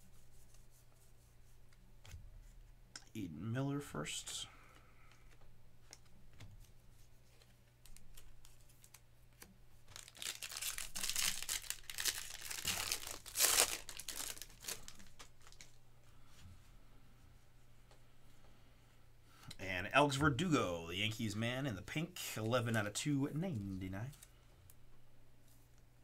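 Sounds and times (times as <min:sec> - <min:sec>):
soft clicks of cards handled: 0:04.6 - 0:09.6, 0:14.9 - 0:15.8, 0:23.5 - 0:25.9
wrapper tearing and crinkling: 0:09.9 - 0:15.8.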